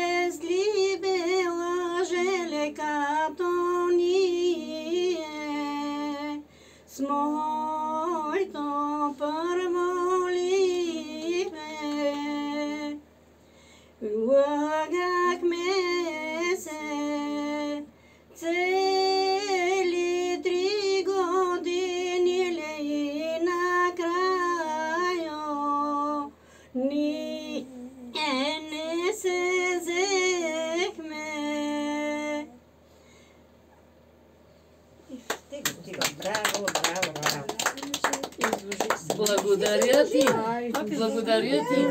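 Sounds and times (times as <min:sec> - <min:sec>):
woman singing unaccompanied: 0:00.0 - 0:13.0, 0:14.0 - 0:32.6, 0:35.8 - 0:41.9
person's voice: 0:35.1 - 0:41.9
small group applauding: 0:35.2 - 0:41.0.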